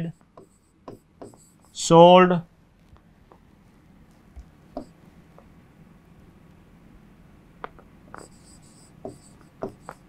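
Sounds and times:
pen tapping on board: 0:00.4 - 0:01.4, 0:09.0 - 0:10.0
pen squeaking on board: 0:08.2 - 0:10.0.

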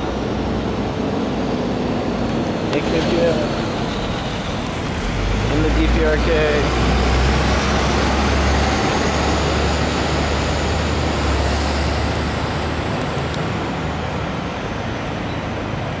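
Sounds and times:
street traffic: 0:00.0 - 0:16.0
truck engine rumbling: 0:00.0 - 0:16.0.

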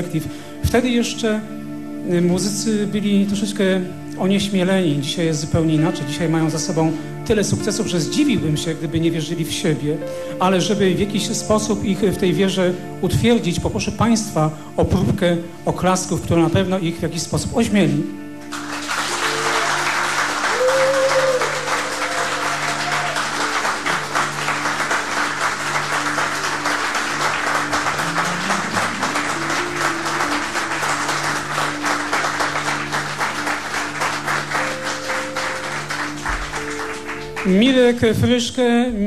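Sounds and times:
held tones of background music: 0:00.0 - 0:39.0
audience applauding: 0:18.4 - 0:38.0.

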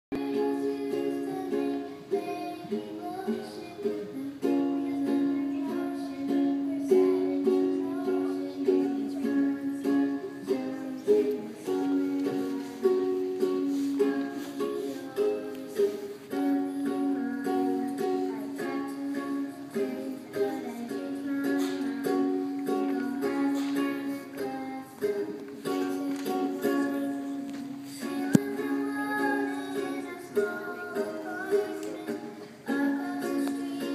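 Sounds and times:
pop song: 0:00.1 - 0:33.9
ukulele strumming chords: 0:00.1 - 0:33.9.

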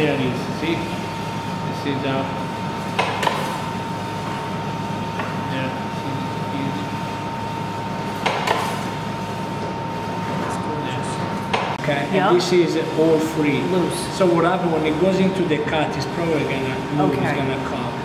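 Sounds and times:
steady background hum: 0:00.0 - 0:18.0.

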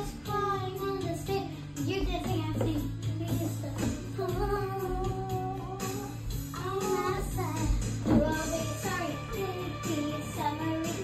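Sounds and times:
child singing: 0:00.0 - 0:11.0
karaoke backing track: 0:00.0 - 0:11.0.

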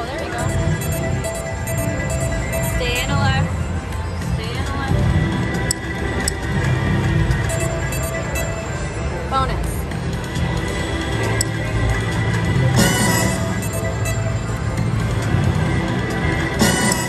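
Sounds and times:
murmur of voices: 0:00.0 - 0:17.0
slot machine game music: 0:00.0 - 0:17.0.

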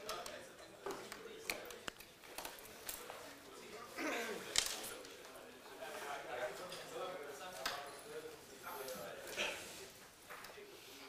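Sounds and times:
faint voices murmuring: 0:00.0 - 0:11.0.

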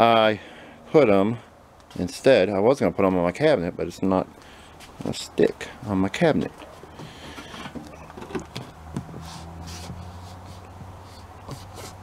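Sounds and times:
hand scuffing a sticker: 0:08.6 - 0:12.0.

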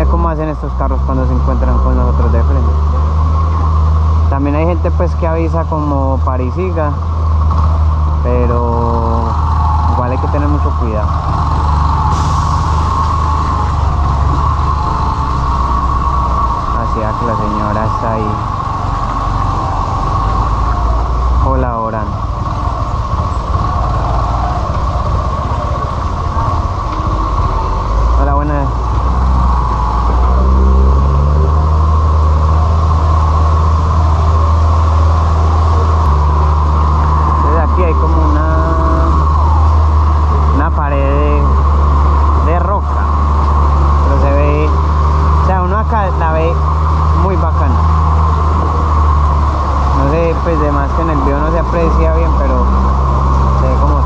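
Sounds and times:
motorcycle engine running: 0:00.0 - 0:54.0
truck diesel engine rumble: 0:00.0 - 0:54.0.

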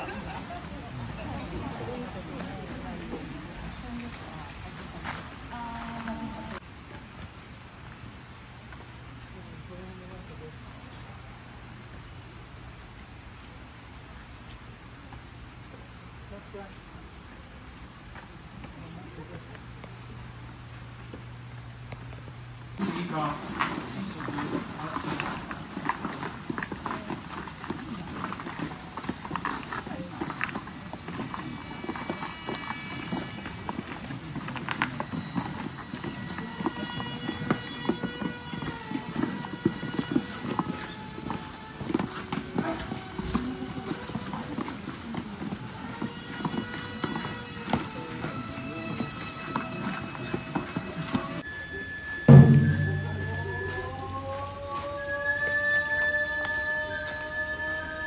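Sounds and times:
crowd murmur: 0:00.0 - 0:06.6, 0:23.4 - 0:55.0
wooden shoes clacking on stone: 0:22.8 - 0:51.4
held melodic notes: 0:51.2 - 0:54.4
rising tones: 0:51.8 - 0:55.8
loud thump: 0:52.3 - 0:53.8.

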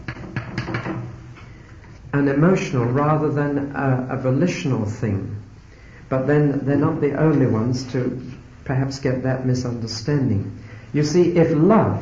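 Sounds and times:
recording hiss: 0:00.0 - 0:12.0.

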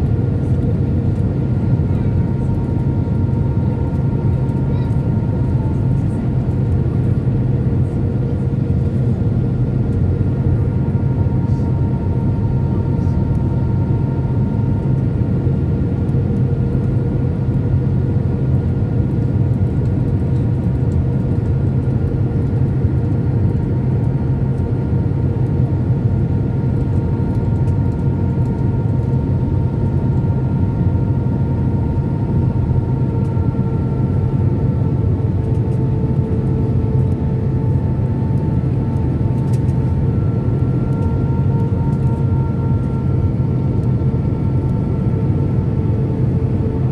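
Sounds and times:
airplane cabin engine roar: 0:00.0 - 0:46.9.

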